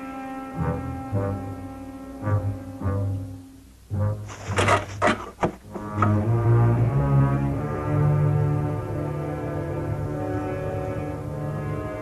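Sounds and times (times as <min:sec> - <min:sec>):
low bowed strings: 0:00.0 - 0:12.0.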